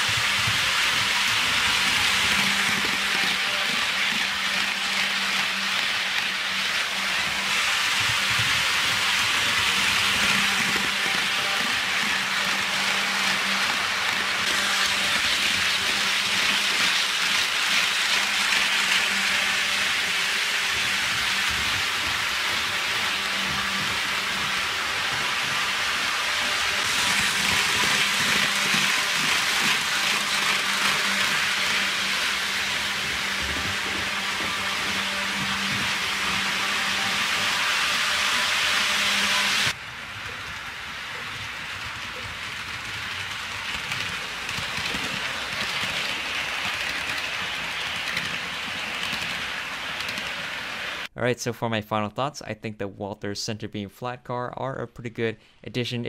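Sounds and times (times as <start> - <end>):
model train wheels rattling on rails: 0.0 - 51.1.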